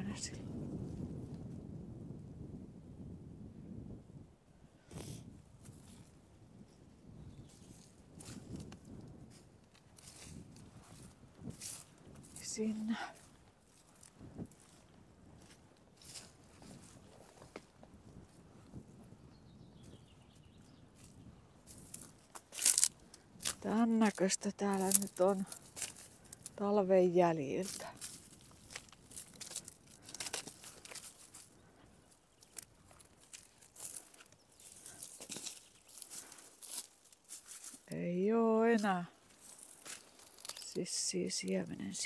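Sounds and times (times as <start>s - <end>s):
wind rumble on microphone: 0.0s - 35.2s
footsteps through dry grass: 5.0s - 26.8s, 27.5s - 38.0s, 38.6s - 42.0s
sharp crackling snap: 21.8s - 23.7s, 24.7s - 26.6s, 39.5s - 40.8s.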